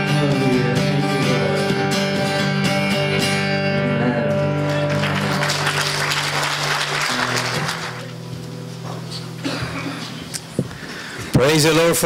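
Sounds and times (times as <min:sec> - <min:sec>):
guitar and keyboard chord: 0:00.0 - 0:10.5
congregation applauding: 0:04.6 - 0:08.3.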